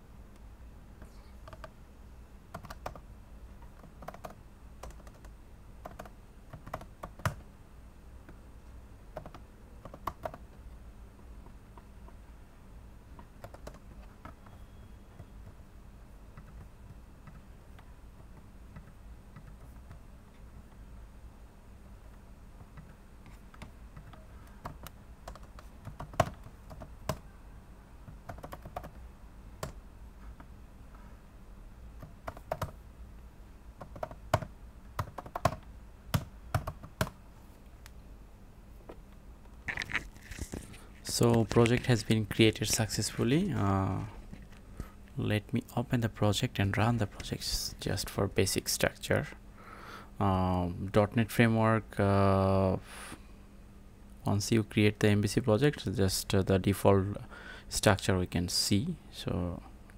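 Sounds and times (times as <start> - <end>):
computer keyboard typing: 1.4 - 1.7, 2.5 - 3.0, 3.6 - 7.4, 9.1 - 10.5, 13.2 - 14.6, 16.4 - 20.0, 22.7 - 27.2, 28.1 - 29.0, 32.0 - 32.8, 33.8 - 37.2.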